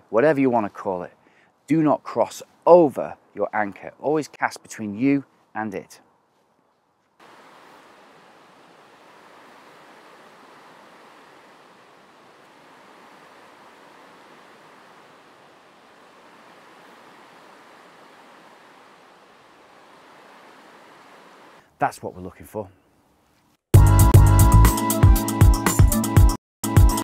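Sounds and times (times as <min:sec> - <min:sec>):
shallow river rushing over riffles: 0:07.2 - 0:21.6.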